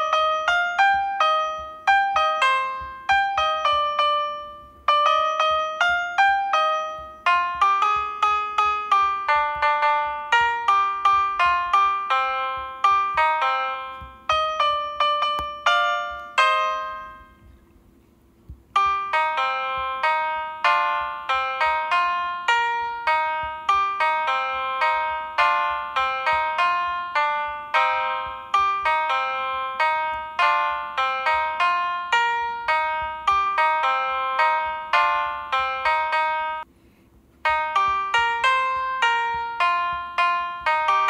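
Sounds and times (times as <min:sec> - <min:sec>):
piano chord ringing: 0:00.0 - 0:17.5, 0:18.7 - 0:36.7, 0:37.4 - 0:41.0
run of piano notes: 0:00.0 - 0:17.6, 0:18.7 - 0:36.7
finger tapping a screen: 0:01.0 - 0:24.1.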